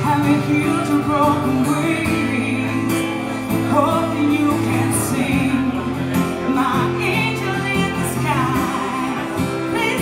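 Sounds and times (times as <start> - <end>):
acoustic guitar: 0.0 - 10.0
woman singing: 0.0 - 10.0.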